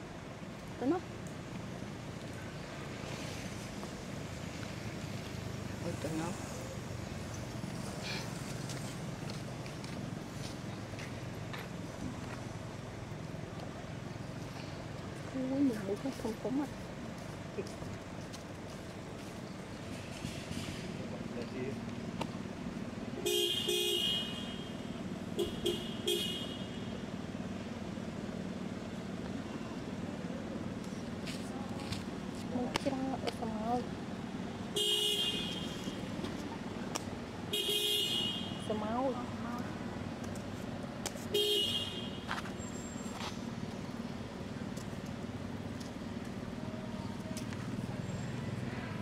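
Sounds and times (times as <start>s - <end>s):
low traffic rumble: 0.0s - 49.0s
vehicle horns tooting: 23.2s - 24.8s, 25.4s - 27.0s, 34.8s - 36.0s, 37.5s - 38.8s, 41.3s - 42.3s.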